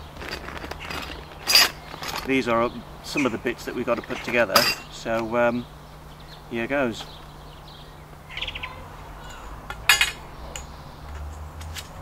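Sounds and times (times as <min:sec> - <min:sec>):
plastic bag rustling: 0:00.0 - 0:02.3
metal nuts and bolts clinking: 0:00.0 - 0:02.5, 0:03.1 - 0:05.3, 0:09.3 - 0:12.0.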